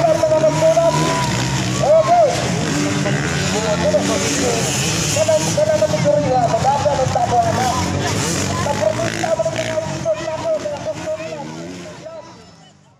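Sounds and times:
motocross bike engines revving: 0.0 - 12.9
people's voices: 0.0 - 12.9.

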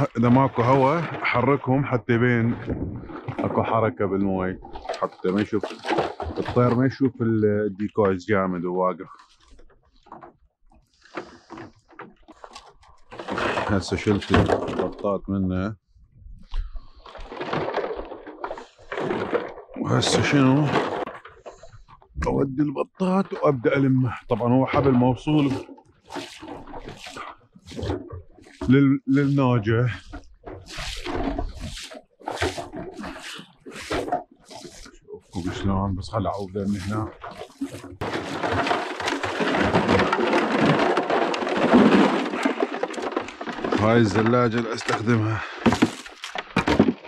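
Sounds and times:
boots splashing through water: 0.0 - 1.5, 23.8 - 47.0
dry grass rustling: 25.3 - 29.4, 30.0 - 35.5, 36.4 - 47.0.

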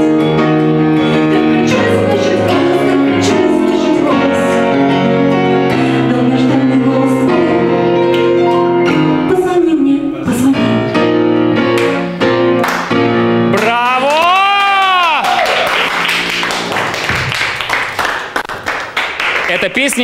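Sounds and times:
grand piano: 0.0 - 19.3
woman singing: 1.0 - 8.4, 9.2 - 11.1
people clapping: 12.6 - 20.0.

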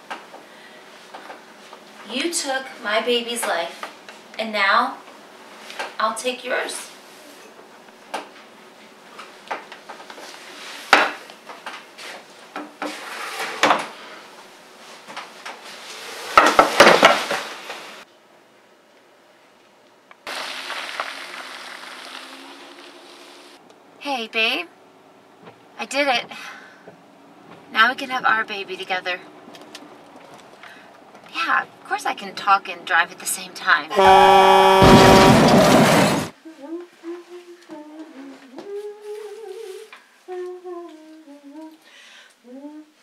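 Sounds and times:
person humming slow tune: 33.9 - 35.2, 36.4 - 41.8, 42.4 - 43.0.

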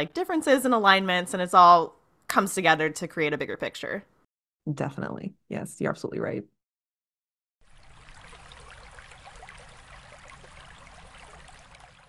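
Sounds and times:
stream babbling: 7.6 - 12.0.

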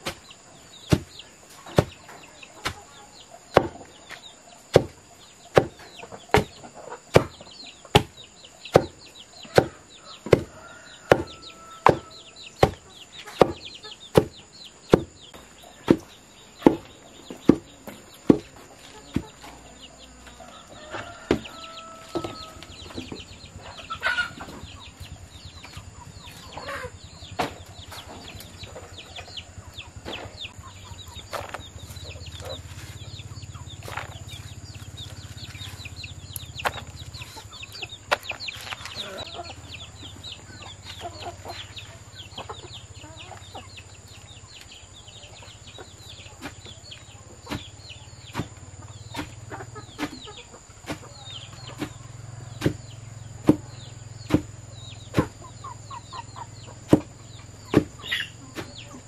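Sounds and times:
chickens clucking: 0.0 - 59.0
wooden pestle thudding in mortar: 8.7 - 9.0, 10.3 - 10.5, 11.1 - 12.8, 54.3 - 54.5.

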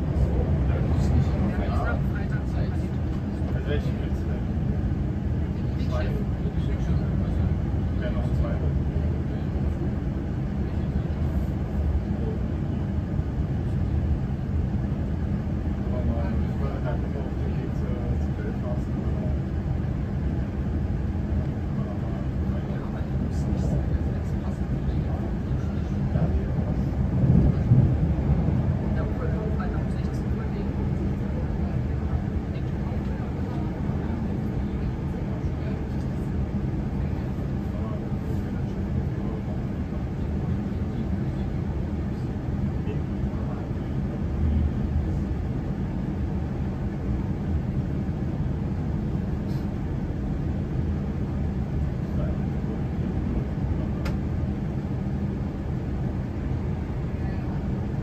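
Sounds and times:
train rumble inside carriage: 0.0 - 58.0.

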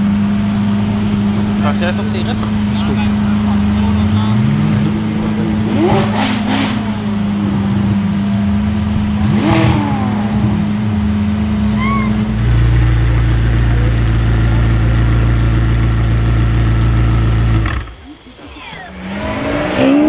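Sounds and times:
car engine idling: 0.0 - 20.0
deep car engine idling: 0.0 - 20.0.

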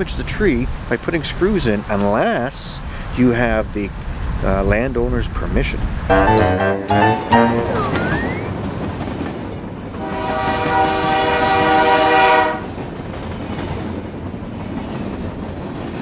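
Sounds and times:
train horn blast: 10.0 - 12.8.

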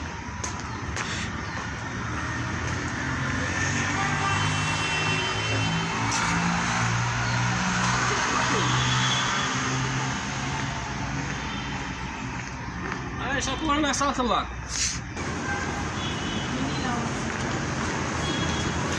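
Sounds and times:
traffic hum: 0.0 - 18.9.

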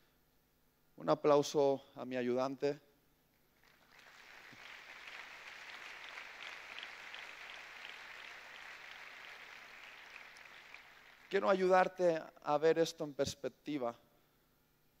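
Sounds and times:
faint audience applause: 3.6 - 11.6.

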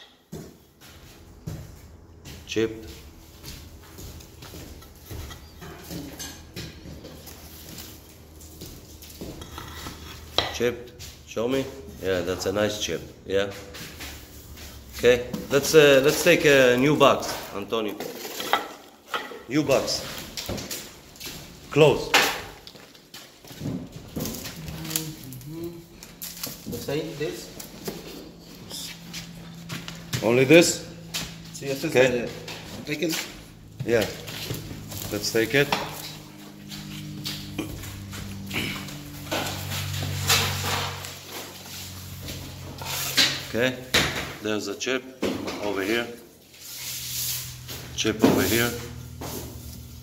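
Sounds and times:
low steady hum: 23.5 - 50.0
background voices talking: 24.4 - 27.7.

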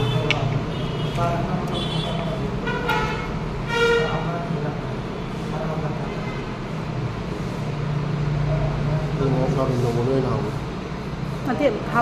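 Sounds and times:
vehicle horn toots: 0.0 - 4.3.

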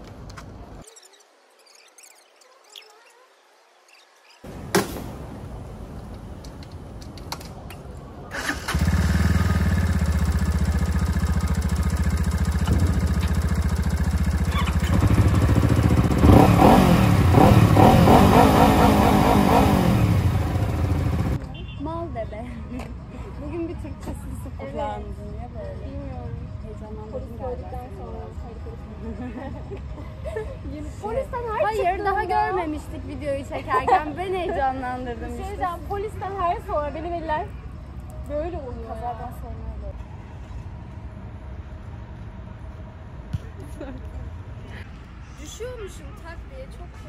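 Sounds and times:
motorcycle engine starting and revving: 8.3 - 21.4.

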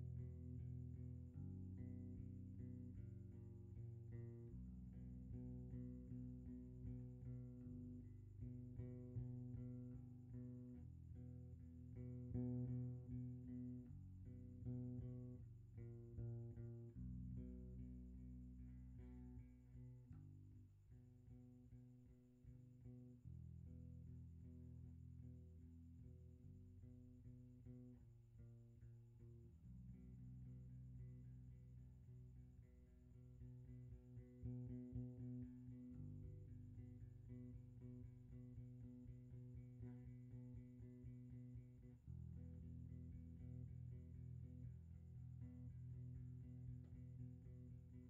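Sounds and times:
electric bass guitar notes: 0.0 - 48.0.

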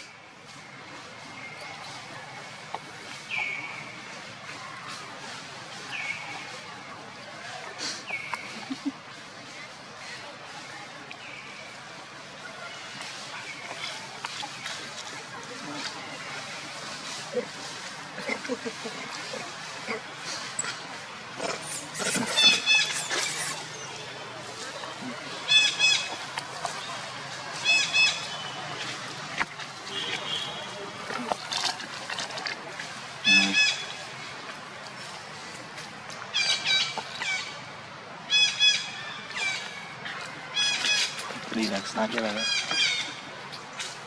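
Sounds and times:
monkey high-pitched wavering calls: 21.6 - 24.0, 25.4 - 26.2, 27.6 - 28.5, 33.2 - 33.9.

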